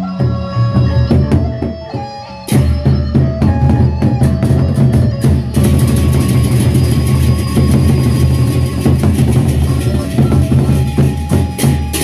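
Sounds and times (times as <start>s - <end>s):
barrel drums beaten in a roll: 2.5s - 12.0s.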